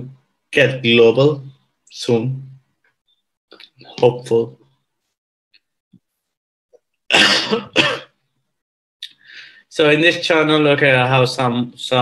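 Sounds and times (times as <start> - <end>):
man clearing his throat: 7.1 - 8.2.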